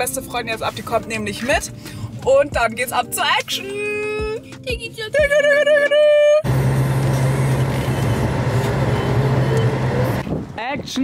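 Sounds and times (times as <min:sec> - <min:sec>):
car road noise: 0:06.4 - 0:10.7.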